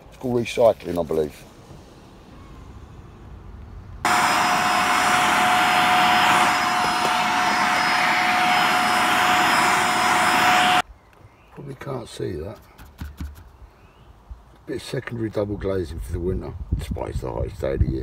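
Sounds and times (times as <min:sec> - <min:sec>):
vacuum cleaner whining: 0:04.0 - 0:10.8.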